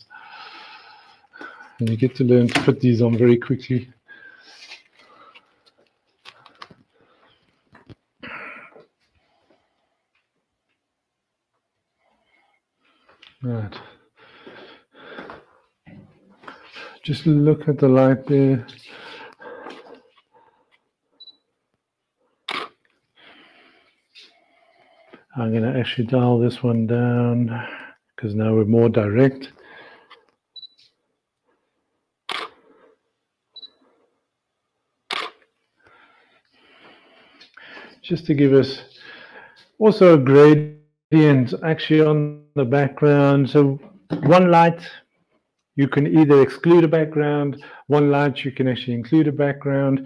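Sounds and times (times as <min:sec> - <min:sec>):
camera shutter firing: 0:22.5 - 0:22.8, 0:32.3 - 0:32.6, 0:35.1 - 0:35.4.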